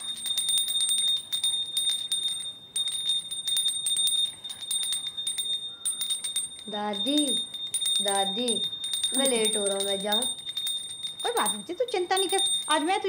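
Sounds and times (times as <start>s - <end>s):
hand bell ringing rapidly: 0.0s - 13.0s.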